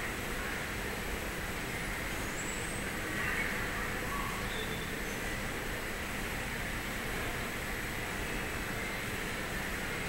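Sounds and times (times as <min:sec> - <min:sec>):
outdoor hum and hiss: 0:00.0 - 0:10.0.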